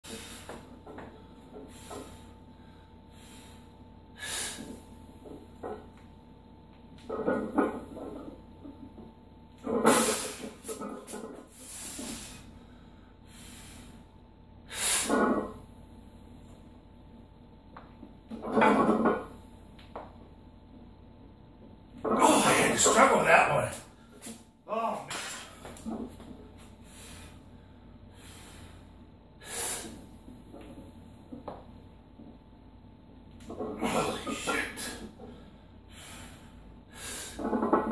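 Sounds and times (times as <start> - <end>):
faint breath: 26.8 - 30.0, 34.8 - 37.4.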